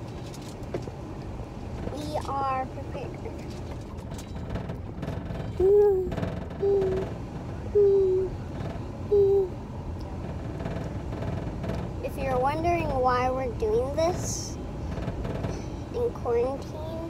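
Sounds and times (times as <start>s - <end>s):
car cabin rumble: 0.0s - 17.0s
child hooting low notes: 5.6s - 7.0s, 7.8s - 8.3s, 9.1s - 9.6s.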